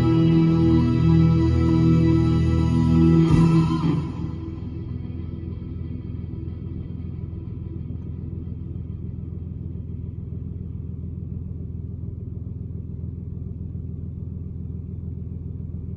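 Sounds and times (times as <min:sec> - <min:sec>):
car engine idling: 0:00.0 - 0:15.9.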